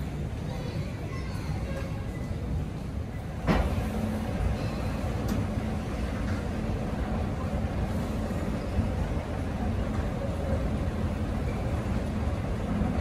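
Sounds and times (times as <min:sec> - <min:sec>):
escalator rumbling: 0:01.5 - 0:13.0.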